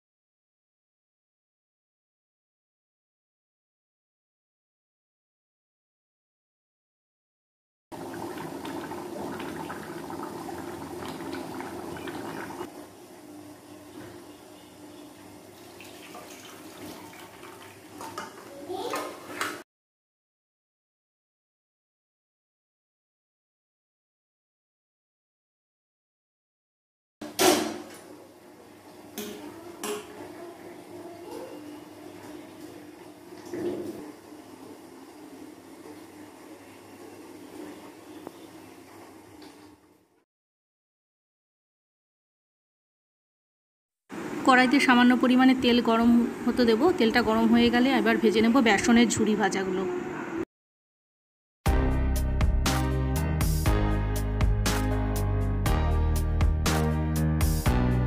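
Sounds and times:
curry bubbling in a pot: 8.0s - 12.7s.

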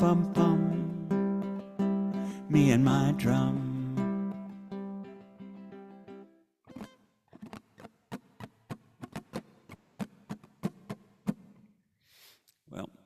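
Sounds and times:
strummed ukulele chord ringing: 0.0s - 6.9s.

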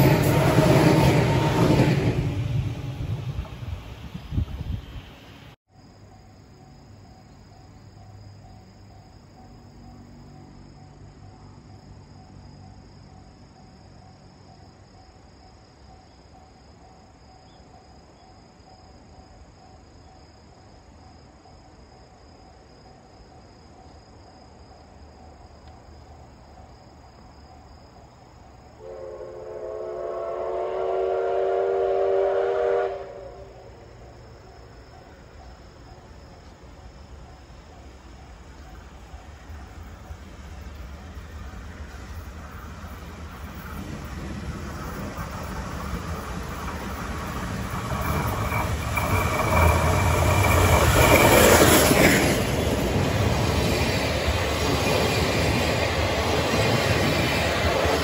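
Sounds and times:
steam locomotive whistle: 0.0s - 2.1s, 28.8s - 33.8s
insects chirping: 0.0s - 58.0s.

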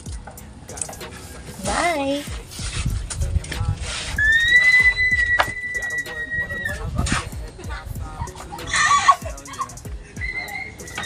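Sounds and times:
rooster crowing: 8.6s - 11.0s.

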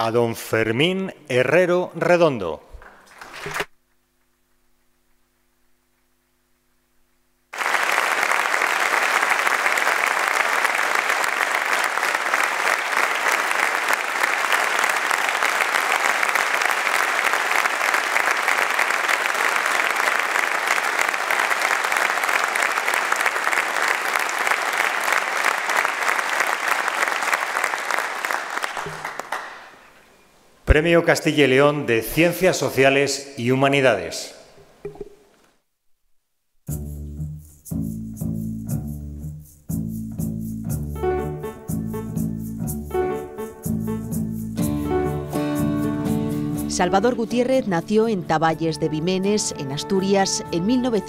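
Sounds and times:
audience applause: 7.5s - 29.8s.

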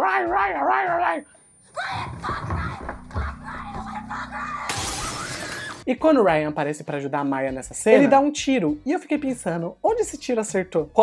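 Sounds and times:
glass shattering: 4.7s - 5.8s.

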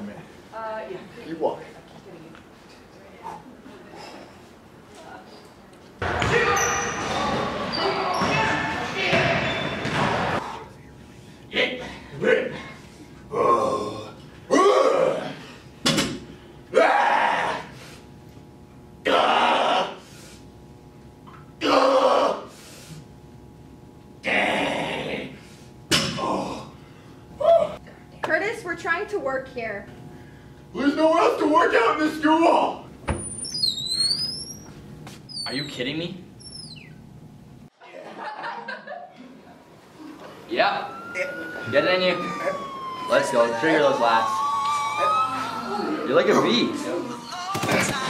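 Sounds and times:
man grunting: 13.3s - 15.4s
door hinges squeaking: 33.1s - 34.7s, 35.3s - 35.8s, 36.4s - 37.0s.

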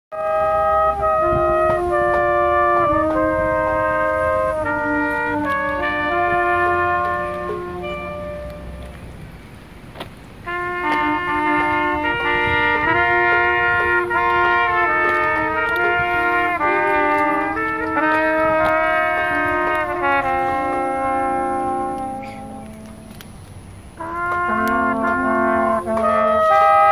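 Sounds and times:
brass band playing: 0.1s - 9.3s, 10.4s - 26.9s.

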